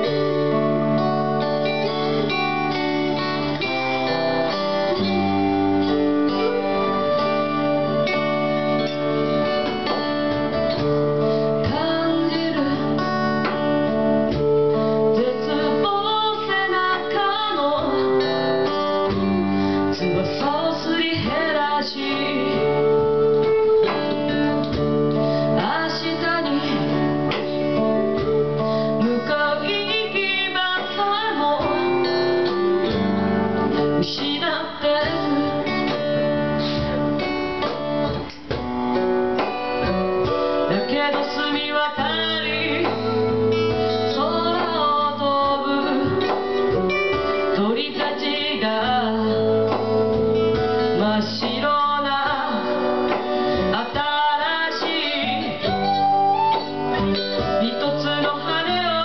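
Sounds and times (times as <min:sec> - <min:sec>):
woman singing: 0:00.0 - 0:38.6, 0:39.4 - 0:59.0
electric guitar: 0:00.0 - 0:59.0
strummed acoustic guitar: 0:00.0 - 0:59.0
end-blown flute: 0:55.0 - 0:58.3.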